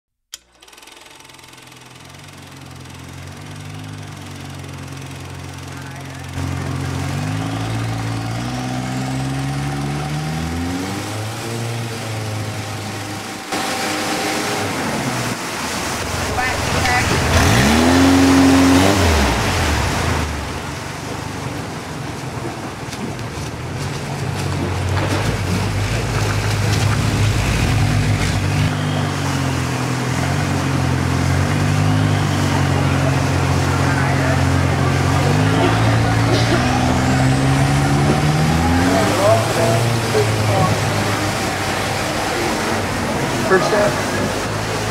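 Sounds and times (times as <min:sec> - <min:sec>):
motorboat engines: 0:00.3 - 0:44.9
rushing noise: 0:25.1 - 0:44.9.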